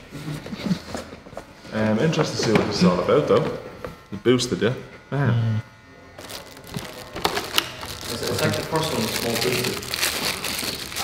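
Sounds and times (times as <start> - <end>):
plastic packaging crinkling: 6.2 - 11.0.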